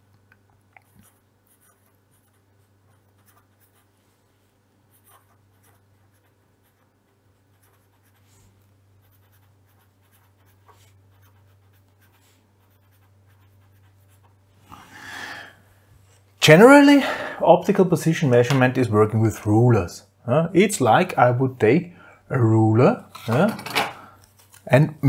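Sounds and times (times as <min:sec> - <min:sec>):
low steady hum: 0:00.0 - 0:25.0
pen scratching on paper: 0:00.9 - 0:03.9, 0:04.9 - 0:08.4, 0:09.0 - 0:14.4.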